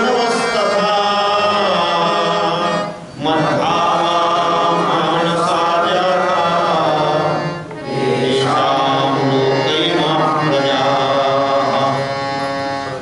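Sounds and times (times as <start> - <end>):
harmonium: 0.0 - 13.0
man chanting: 0.0 - 13.0.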